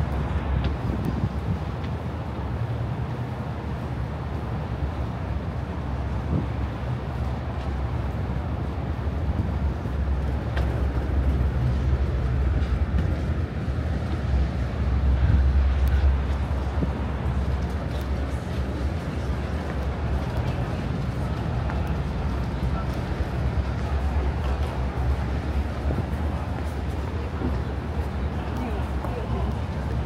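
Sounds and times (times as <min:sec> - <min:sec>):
boat engine rumble: 0:00.0 - 0:30.0.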